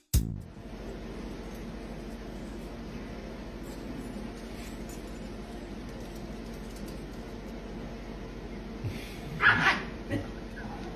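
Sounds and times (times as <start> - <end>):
small dog barking: 9.4 - 9.9.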